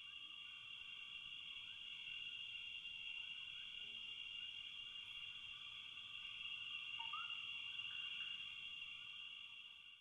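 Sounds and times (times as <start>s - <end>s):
crickets chirring: 0.1s - 9.8s.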